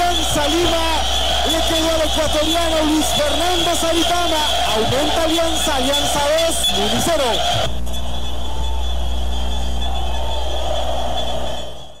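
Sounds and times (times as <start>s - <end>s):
constant low hum: 7.6s - 11.9s.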